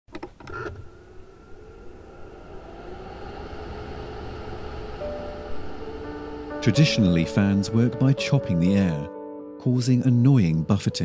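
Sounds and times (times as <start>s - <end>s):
electric fan motor whine: 0.1s - 9.0s
rumble of buffeting air: 0.7s - 8.8s
piano notes: 3.2s - 11.0s.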